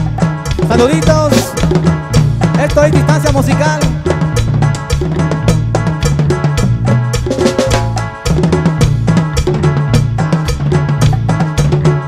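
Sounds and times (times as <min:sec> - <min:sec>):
dance band music: 0:00.0 - 0:12.0
drum kit beat: 0:00.0 - 0:12.0.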